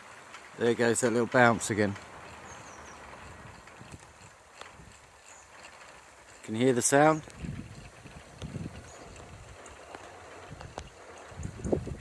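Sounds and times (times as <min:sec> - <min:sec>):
wind turbine spinning: 0:00.0 - 0:12.0.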